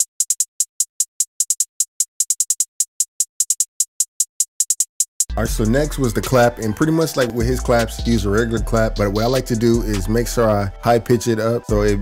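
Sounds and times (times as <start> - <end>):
trap hi-hat pattern: 4.6 - 10.6.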